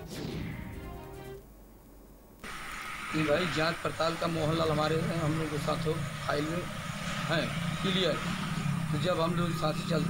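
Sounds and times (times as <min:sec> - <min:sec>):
steady low hum: 0:01.4 - 0:10.0
man talking: 0:03.1 - 0:10.0.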